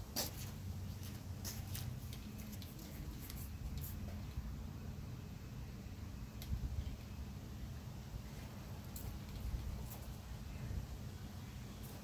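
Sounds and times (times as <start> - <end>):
sandals scuffing on concrete: 0.0 - 4.4
faint low hum: 0.0 - 12.0.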